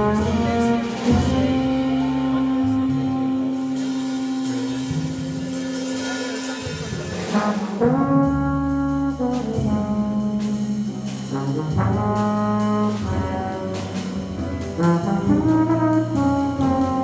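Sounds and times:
drums: 0.0 - 17.0
trombone jazz melody: 0.0 - 17.0
upright bass: 0.0 - 17.0.

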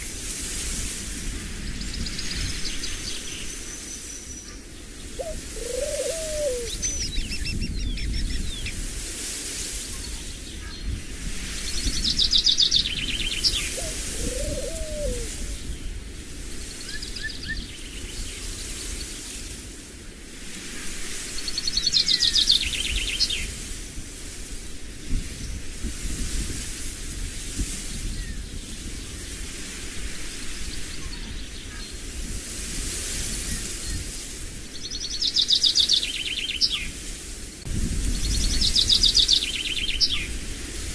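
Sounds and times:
songbird trilling: 2.0 - 8.7, 12.2 - 15.4.

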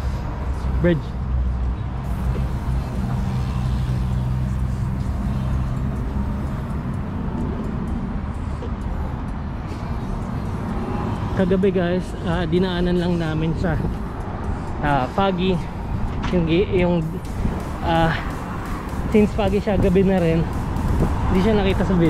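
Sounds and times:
faint engine hum: 0.0 - 22.0
road traffic rumble: 0.0 - 22.0.

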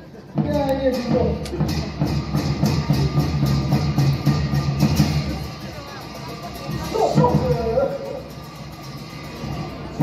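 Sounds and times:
drum beat: 0.4 - 8.5.

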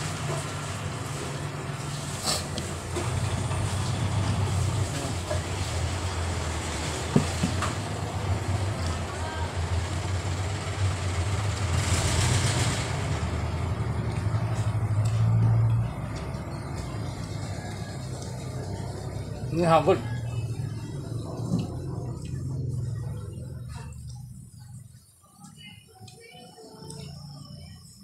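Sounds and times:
vehicle engine humming: 0.0 - 28.0.

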